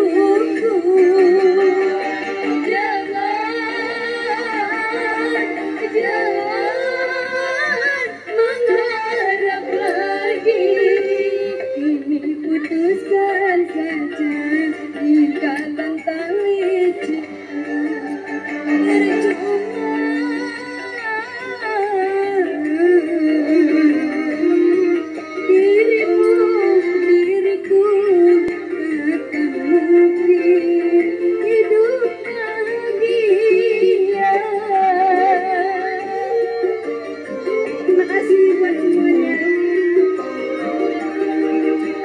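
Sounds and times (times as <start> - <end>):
band with keyboard and guitar: 0.0 - 42.0
woman singing into microphone: 0.0 - 42.0.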